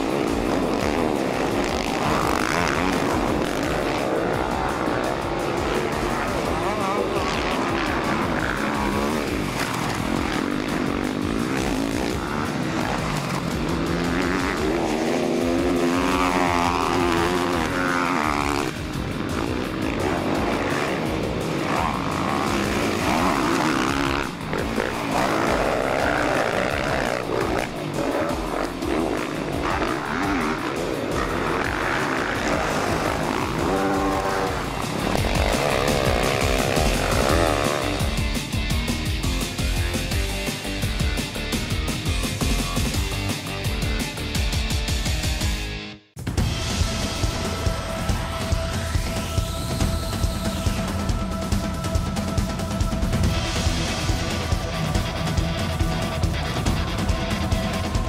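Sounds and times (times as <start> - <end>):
motocross bike engines revving: 0.0 - 45.8, 46.4 - 58.0
music playing: 0.0 - 58.0.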